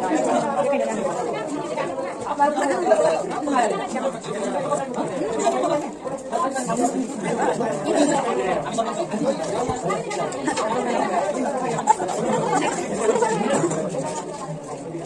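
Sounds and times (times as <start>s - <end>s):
overlapping chatter of voices: 0.0s - 15.0s.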